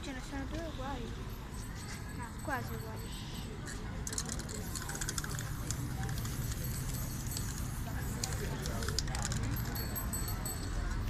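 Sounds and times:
murmur of street voices: 0:00.0 - 0:11.0
spray can clicks and rattles: 0:04.0 - 0:09.9
spray paint cans hissing: 0:04.0 - 0:10.0.

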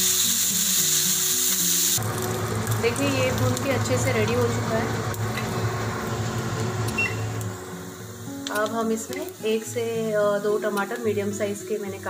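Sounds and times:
hiss: 0:00.0 - 0:02.0
low hum: 0:02.0 - 0:08.2.

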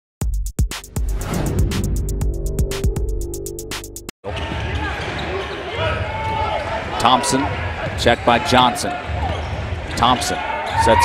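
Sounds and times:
crowd noise: 0:04.2 - 0:11.0
shoes squeaking: 0:04.3 - 0:06.8, 0:08.1 - 0:11.0.

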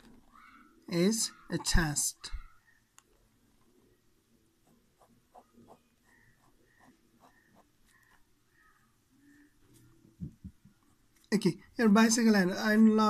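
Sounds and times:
pen scratching on paper: 0:04.6 - 0:08.2.

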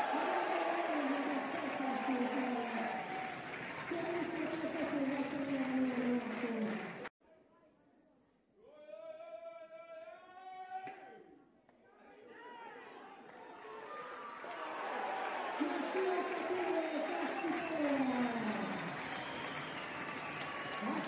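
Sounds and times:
held shout: 0:00.0 - 0:03.4
crowd cheering and shouting: 0:00.0 - 0:04.7, 0:12.3 - 0:21.0.

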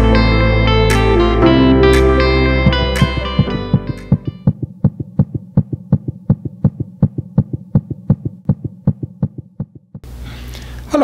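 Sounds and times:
fast heartbeat thuds: 0:02.6 - 0:10.1
steady low hum: 0:02.6 - 0:10.9.

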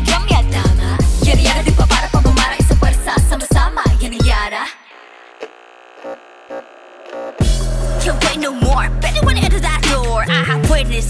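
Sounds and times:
steady buzzing hum: 0:04.9 - 0:07.8.

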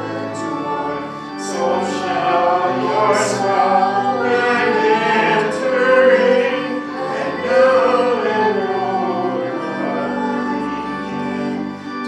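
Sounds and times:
choir singing long notes: 0:00.0 - 0:12.0.

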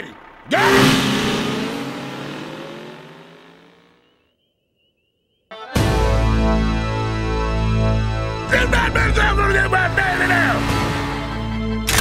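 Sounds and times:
armoured vehicles roaring off: 0:00.0 - 0:04.2, 0:08.6 - 0:12.0.

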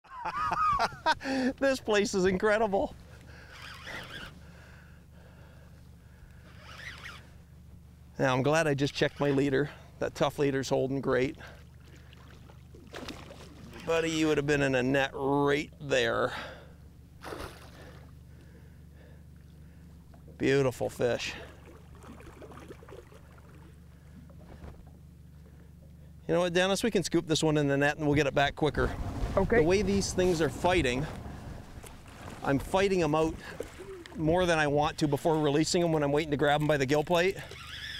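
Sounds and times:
steady low hum: 0:00.1 - 0:37.9
fishing reel whirring: 0:03.4 - 0:04.5, 0:06.3 - 0:07.5, 0:37.4 - 0:37.9
water splashing against boat: 0:08.2 - 0:26.1, 0:27.7 - 0:37.9.

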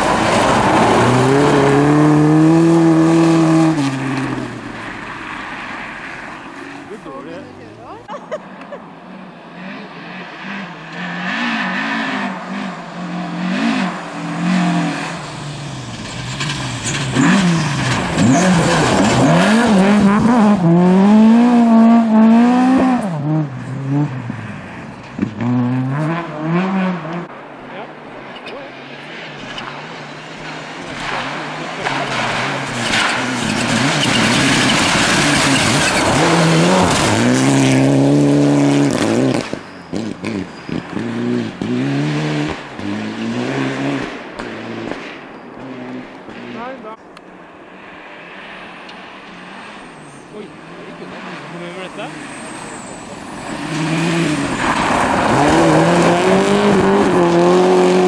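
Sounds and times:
rally car engine revving: 0:00.0 - 0:08.1, 0:09.0 - 0:47.0, 0:49.2 - 0:58.0
second car engine: 0:00.0 - 0:47.6, 0:48.2 - 0:58.0.

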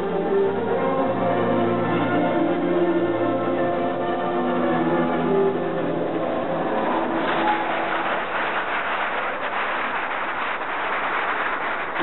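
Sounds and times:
audience applause: 0:06.6 - 0:12.0.

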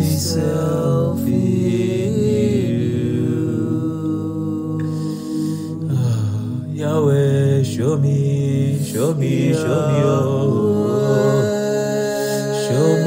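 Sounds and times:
wordless chant-like vocal: 0:00.0 - 0:13.0.

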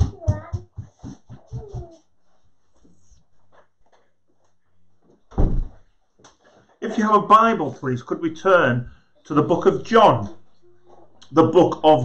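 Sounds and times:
dull heavy thump: 0:05.3 - 0:05.8.

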